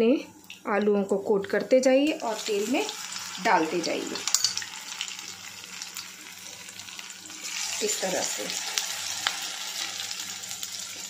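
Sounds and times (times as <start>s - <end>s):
potato deep-frying in oil: 0.4s - 11.0s.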